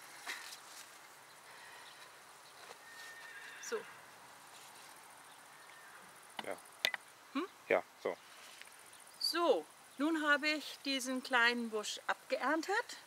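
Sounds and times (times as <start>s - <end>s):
bush branches rustling: 0.0s - 5.6s, 8.2s - 9.0s.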